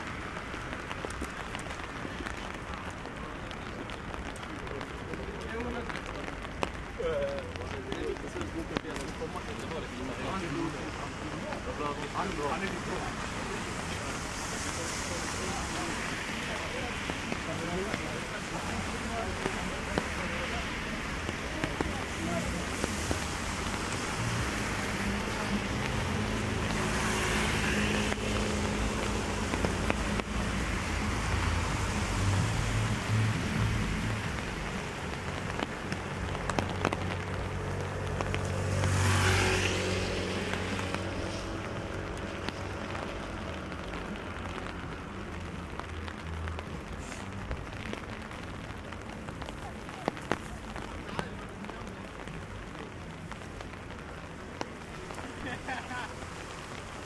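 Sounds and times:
rain on wet pavement: 0.0s - 57.0s
street traffic rumble: 0.0s - 57.0s
motor vehicle passing: 20.4s - 47.4s.

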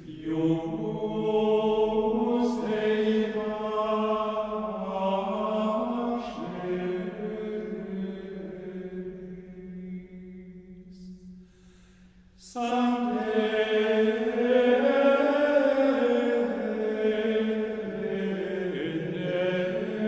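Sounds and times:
slow religious vocal chant: 0.0s - 20.0s.

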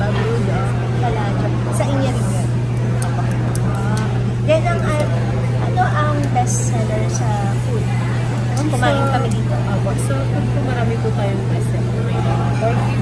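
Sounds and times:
two women talking: 0.0s - 2.6s, 3.7s - 13.0s
steady low hum: 0.0s - 13.0s.

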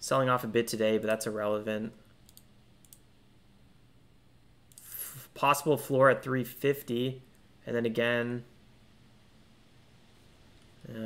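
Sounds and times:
man speaking: 0.0s - 2.0s, 5.2s - 8.5s
low steady hum: 0.0s - 11.0s.

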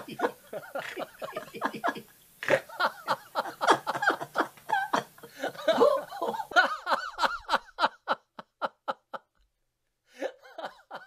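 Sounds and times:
man laughing hard: 0.0s - 9.3s, 10.2s - 11.0s.

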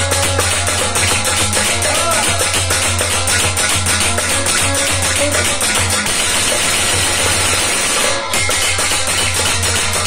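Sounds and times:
harmonium playing: 0.0s - 10.0s.

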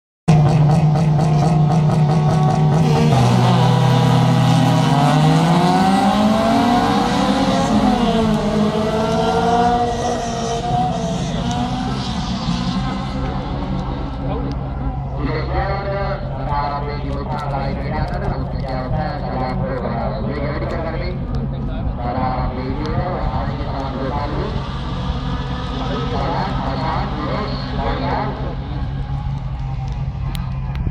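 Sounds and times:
race car engines revving: 0.3s - 30.9s
race cars accelerating: 0.3s - 30.9s.

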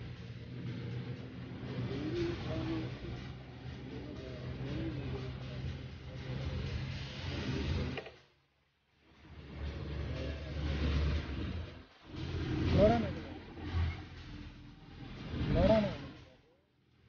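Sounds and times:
vehicle engine noise: 0.0s - 17.0s.

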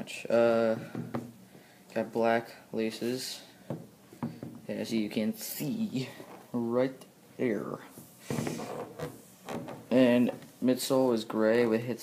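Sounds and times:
sneaker scraping on wooden table: 8.2s - 10.5s.

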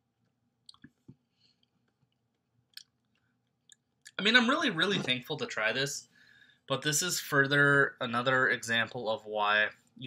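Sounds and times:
mouth clicks and lip smacking: 0.6s - 4.2s.

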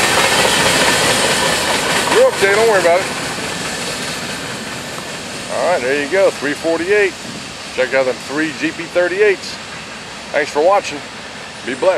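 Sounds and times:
freight train wheels rumbling on track: 0.0s - 11.9s.

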